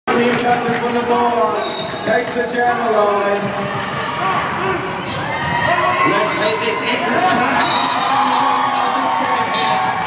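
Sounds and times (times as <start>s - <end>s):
voices in a sports hall: 0.1s - 10.0s
high whistle: 1.6s - 2.0s, 7.6s - 8.0s.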